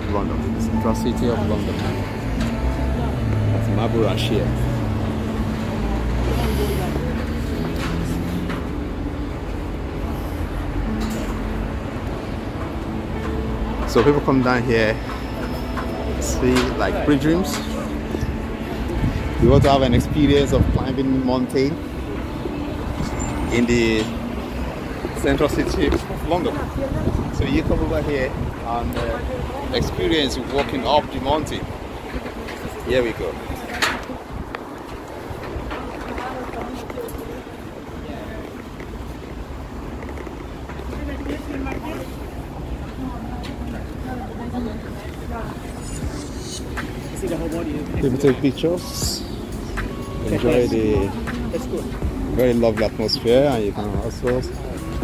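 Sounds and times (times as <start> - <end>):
background voices: 0.0 - 55.0
road traffic rumble: 0.0 - 55.0.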